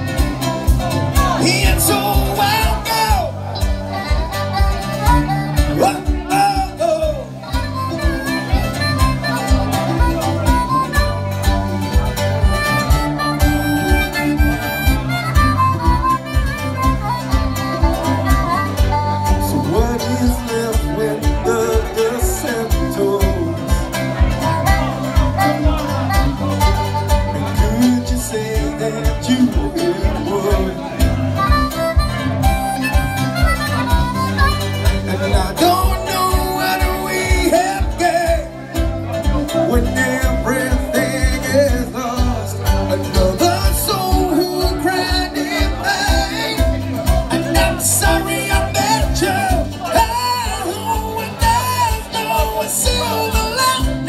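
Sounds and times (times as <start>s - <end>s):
drum kit beat: 0.0s - 54.0s
electric bass: 0.0s - 54.0s
electric guitar: 0.0s - 54.0s
harmonica wailing: 0.0s - 54.0s
live band playing: 0.0s - 54.0s.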